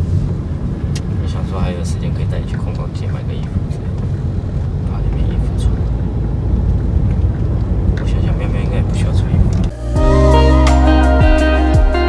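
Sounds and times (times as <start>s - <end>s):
car cabin road rumble: 0.0s - 9.8s.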